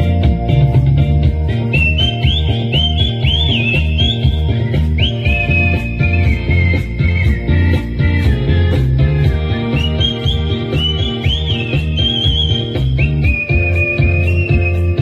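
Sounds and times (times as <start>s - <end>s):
pop backing track with bass beat: 0.0s - 15.0s
man whistling a melody: 1.5s - 8.4s, 9.3s - 15.0s.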